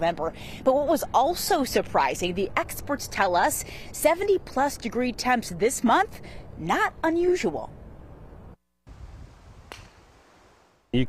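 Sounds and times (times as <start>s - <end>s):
low outdoor hiss: 0.0s - 11.0s
golf club striking ball: 9.6s - 10.1s.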